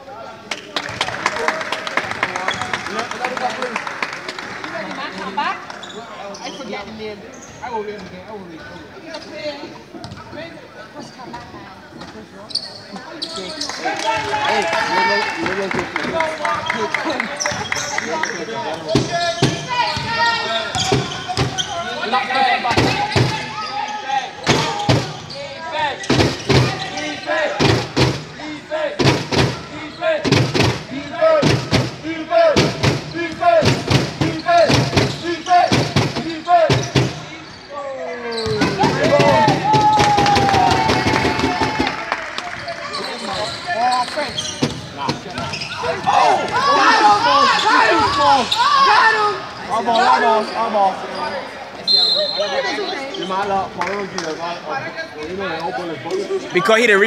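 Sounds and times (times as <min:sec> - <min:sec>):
voices calling out: 0:12.5 - 0:53.6
basketball dribbling thuds: 0:32.6 - 0:37.2
people shouting: 0:38.5 - 0:42.1, 0:45.8 - 0:50.2.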